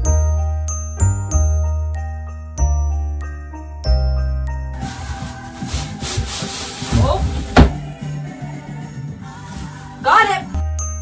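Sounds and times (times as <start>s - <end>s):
cardboard box scraping on floor: 4.8s - 7.8s
sharp knock: 7.5s - 7.8s.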